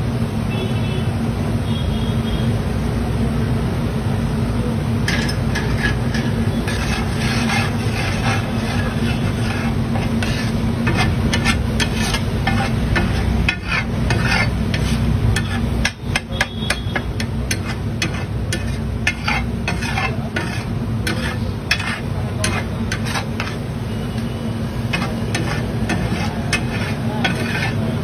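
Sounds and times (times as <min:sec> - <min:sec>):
steady low hum: 0:03.9 - 0:28.0
metal spatulas scraping griddle: 0:05.0 - 0:28.0.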